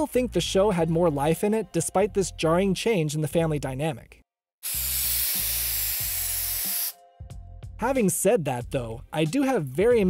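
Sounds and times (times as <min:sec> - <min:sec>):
spray-paint can hissing: 0:04.6 - 0:07.0.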